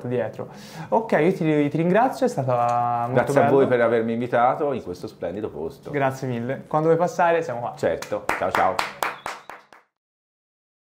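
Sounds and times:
handclaps: 8.0s - 10.0s.

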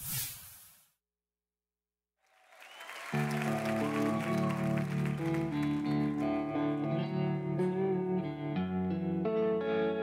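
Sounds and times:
audience applause: 2.2s - 7.0s.

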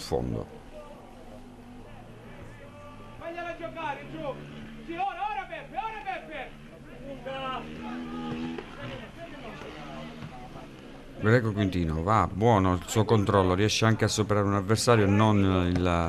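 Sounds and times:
players shouting: 0.6s - 11.3s, 14.7s - 16.0s.

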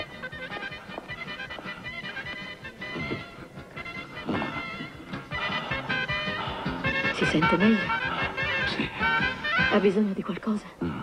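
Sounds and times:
faint dance orchestra polka: 0.0s - 10.0s.

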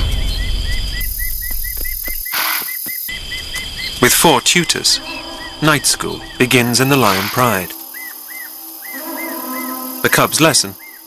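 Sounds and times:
high insect hiss: 0.0s - 11.0s.

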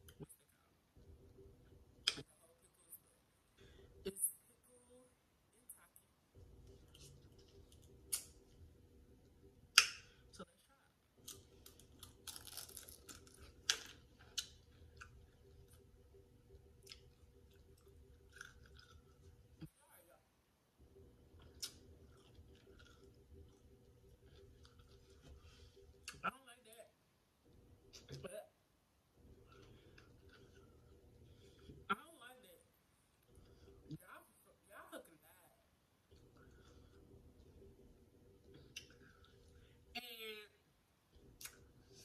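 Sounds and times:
faint steady hum: 0.0s - 42.0s
crunching and chewing food: 6.4s - 8.7s, 11.1s - 19.7s, 20.9s - 26.2s, 29.2s - 31.9s, 33.1s - 34.0s, 36.0s - 39.9s.

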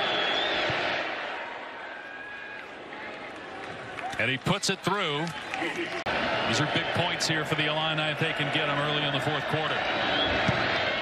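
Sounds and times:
stadium crowd hum: 0.0s - 11.0s.

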